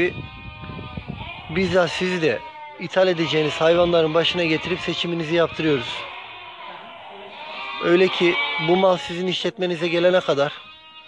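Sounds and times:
sheep bleating: 0.0 - 11.0
man's voice: 1.5 - 6.2, 7.8 - 10.6.

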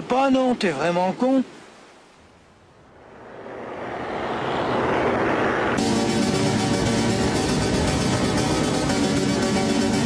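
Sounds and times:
vehicle rushing noise: 2.8 - 10.0
music: 5.8 - 10.0.

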